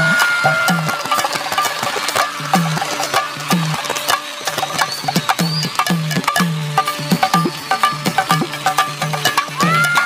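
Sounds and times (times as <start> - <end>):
dholak drum strokes and slaps: 0.0 - 10.0
folk band music: 0.1 - 10.0.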